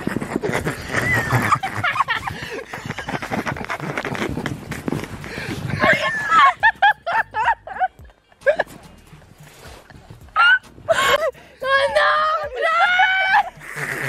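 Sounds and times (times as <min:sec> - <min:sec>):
rapid high-pitched laughter: 0:00.0 - 0:04.9, 0:05.7 - 0:08.7, 0:12.6 - 0:14.0
sled sliding over snow: 0:00.0 - 0:06.6.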